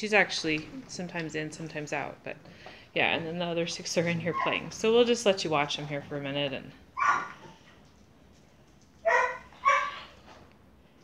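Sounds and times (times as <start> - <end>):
puppy yipping barks: 7.0 - 7.6, 9.0 - 10.1.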